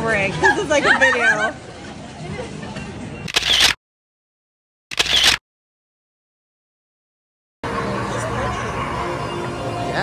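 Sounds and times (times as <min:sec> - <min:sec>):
camera shutter click: 0:03.3 - 0:03.8, 0:04.9 - 0:05.4.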